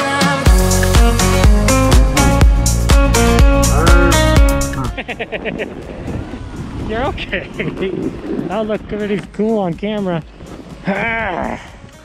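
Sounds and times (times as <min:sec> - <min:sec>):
wind noise on microphone: 0:01.5 - 0:12.0.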